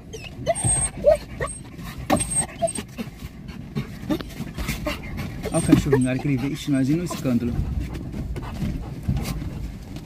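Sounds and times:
dog whining and yelping: 0.0s - 7.3s
car rumbling: 0.0s - 10.0s.

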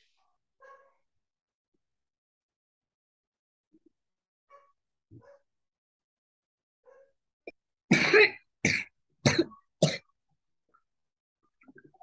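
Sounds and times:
person coughing: 7.9s - 10.1s.

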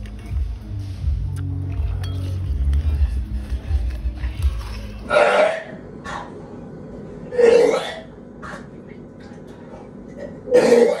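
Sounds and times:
person coughing: 10.2s - 11.0s.

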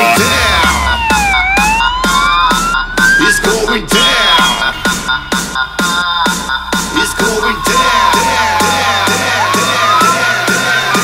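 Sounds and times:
electronic music with steady beat: 0.0s - 11.0s
fire engine siren wailing: 0.0s - 11.0s.

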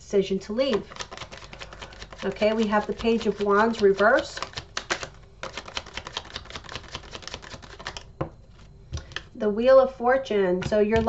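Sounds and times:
cards being shuffled: 0.6s - 9.3s.

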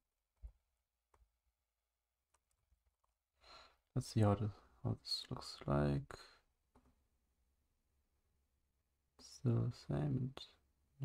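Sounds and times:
person breathing in: 3.4s - 3.8s.

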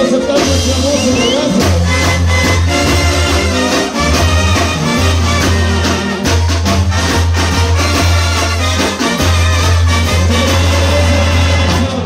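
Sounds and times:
live brass band through speakers: 0.0s - 12.0s.

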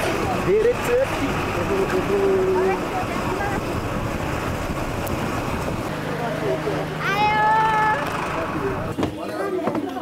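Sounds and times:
faint chatter: 5.9s - 10.0s.

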